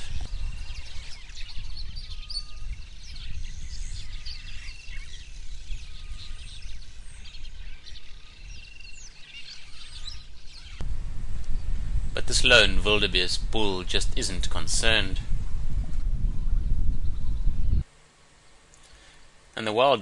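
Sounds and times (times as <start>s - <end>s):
whistled bird notes: 0.0s - 10.8s
birds chirping: 0.0s - 15.2s, 16.3s - 17.8s
low rumble: 10.8s - 17.8s.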